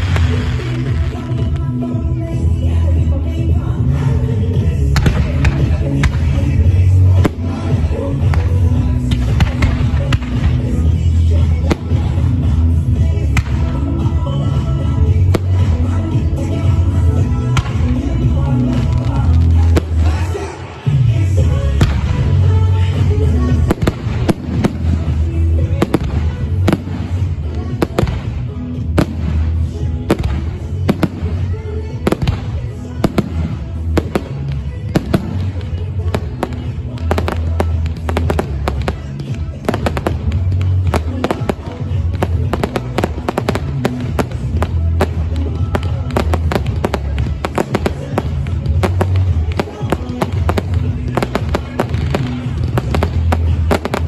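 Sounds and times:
fireworks bangs and pops: 0.0 - 54.0.

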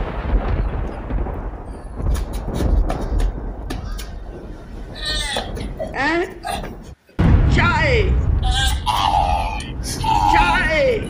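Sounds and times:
low thunder rumble: 0.0 - 11.0
sharp thunder cracks: 0.0 - 11.0.

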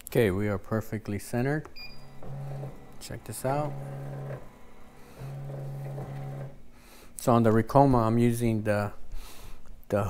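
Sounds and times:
embroidery machine low hum: 1.6 - 6.8.

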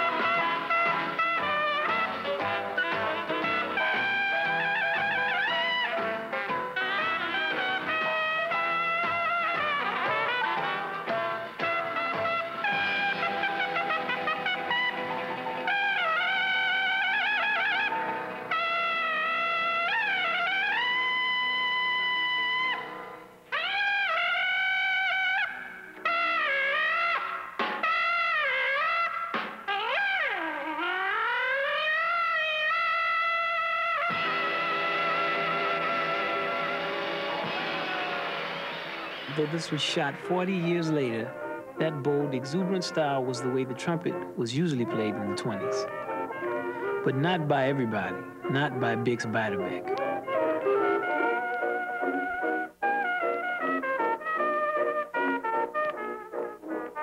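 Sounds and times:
jazz trumpet: 0.0 - 57.0
small jazz band: 0.0 - 57.0
trombone: 0.0 - 57.0.

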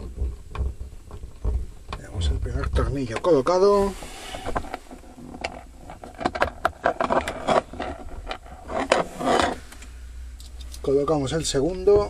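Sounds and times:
small parts clicking and scraping: 4.1 - 10.9.

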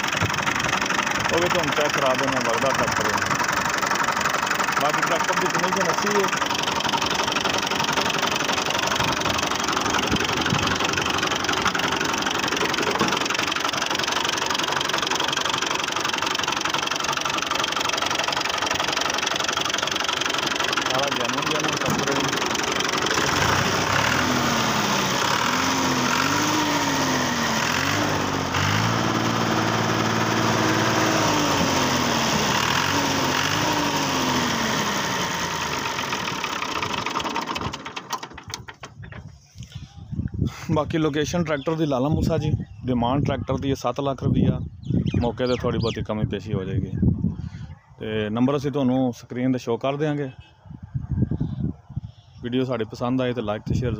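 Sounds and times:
tractor diesel engine idling: 0.0 - 40.1.

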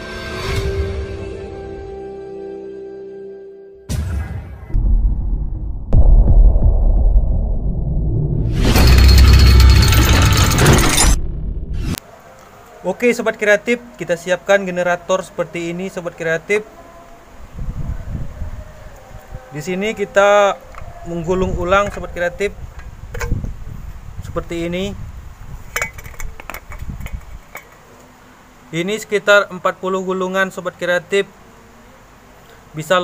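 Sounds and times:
deep rumble: 4.7 - 12.0
man speaking: 19.6 - 22.6, 28.7 - 31.3, 32.7 - 33.0.

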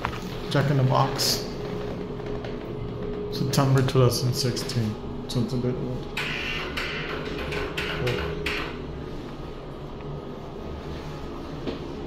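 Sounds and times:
exhaust fan humming: 0.0 - 12.0.

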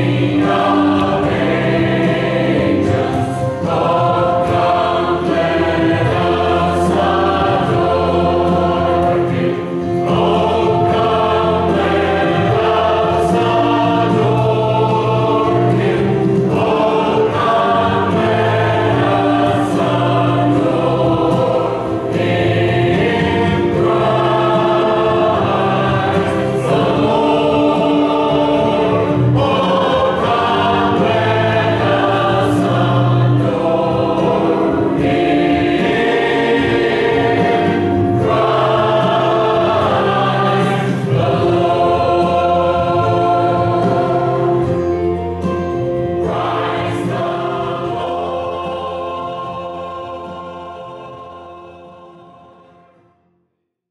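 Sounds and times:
mixed choir singing: 0.0 - 53.2.

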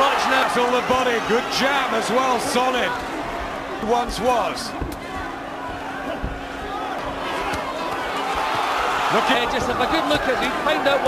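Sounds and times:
crowd murmur: 1.5 - 11.0.

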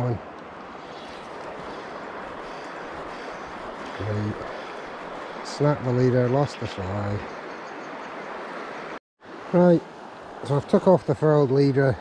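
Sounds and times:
river water flowing: 0.0 - 12.0.

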